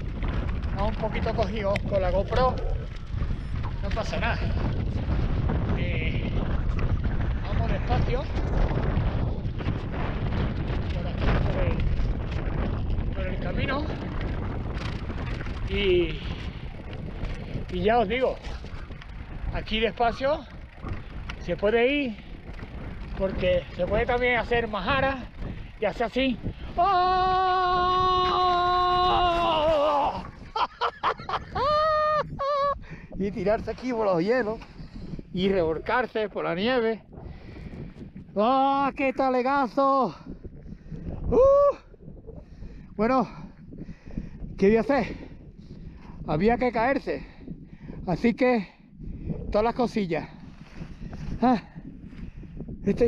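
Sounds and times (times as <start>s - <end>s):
bicycle tyres rolling on gravel: 0.0s - 48.0s, 49.2s - 53.0s
wind rumble on microphone: 0.0s - 53.0s
man yelling: 26.7s - 30.3s.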